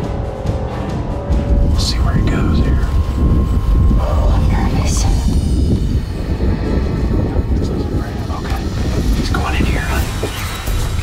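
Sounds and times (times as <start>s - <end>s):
steady low rumble: 0.0s - 11.0s
man whispering: 1.7s - 3.2s, 7.2s - 10.6s.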